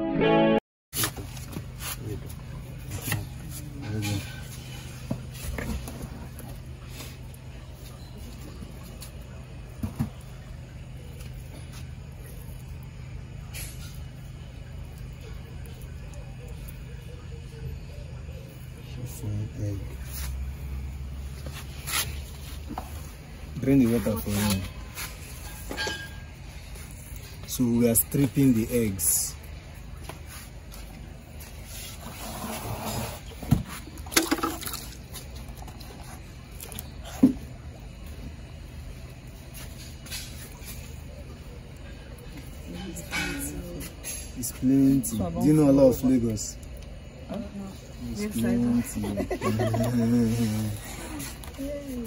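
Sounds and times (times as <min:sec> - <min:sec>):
low motor hum: 0:01.2 - 0:44.1.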